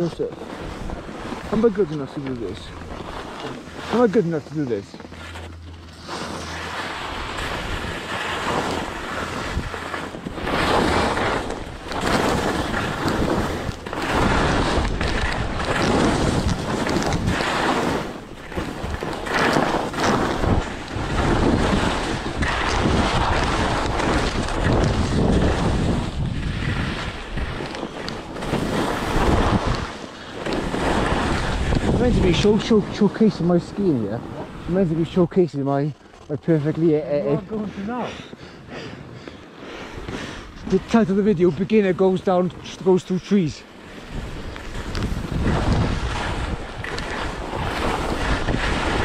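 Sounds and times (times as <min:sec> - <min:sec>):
wind rushing over microphone: 0:00.0 - 0:35.8, 0:39.9 - 0:49.0
skis scraping over snow: 0:00.0 - 0:49.0.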